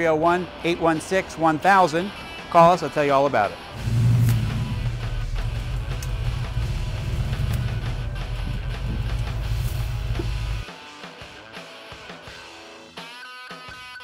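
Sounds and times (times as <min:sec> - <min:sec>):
rock music: 0:03.5 - 0:14.0
car engine running: 0:03.7 - 0:10.6.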